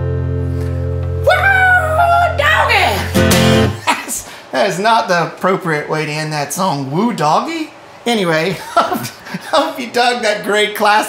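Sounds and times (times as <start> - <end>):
acoustic guitar chord ringing: 0.0 - 3.8.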